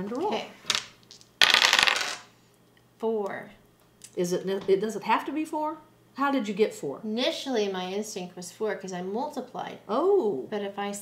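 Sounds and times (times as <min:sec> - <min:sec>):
dice clattering on wooden table: 0:00.2 - 0:02.3.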